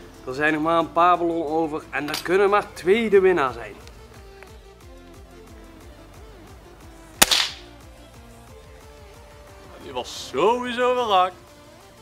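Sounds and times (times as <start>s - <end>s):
background music with steady beat: 0.0s - 12.0s
air rifle shot: 7.2s - 7.7s.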